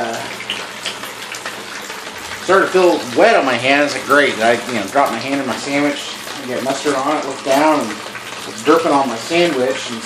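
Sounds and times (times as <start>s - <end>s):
faint water drip ticks: 0.0s - 10.0s
water splashing through leaking roof: 0.0s - 10.0s.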